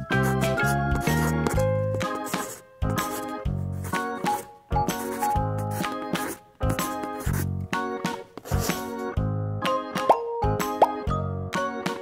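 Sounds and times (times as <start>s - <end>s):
bouncy background music: 0.0s - 12.0s
rising cartoon plop effect: 10.0s - 11.0s.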